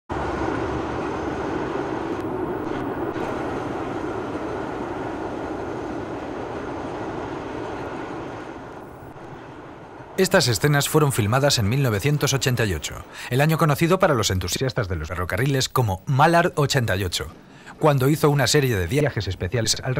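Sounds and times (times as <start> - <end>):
train rumbling on rails: 0.1 - 15.7.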